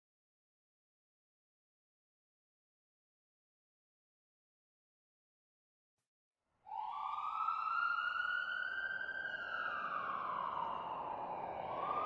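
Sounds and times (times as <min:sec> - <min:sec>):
emergency siren wailing: 0:06.7 - 0:12.0.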